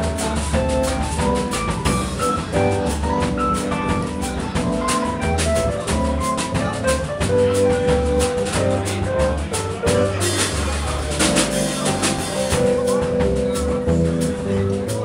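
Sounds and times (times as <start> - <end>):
drum and cymbal strokes: 0.0 - 15.0
keyboard: 0.0 - 15.0
walking upright bass line: 0.0 - 15.0.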